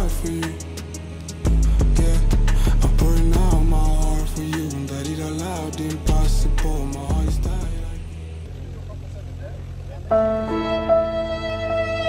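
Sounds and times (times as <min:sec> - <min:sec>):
aircraft engine and propeller drone: 0:00.0 - 0:02.6, 0:03.2 - 0:10.5.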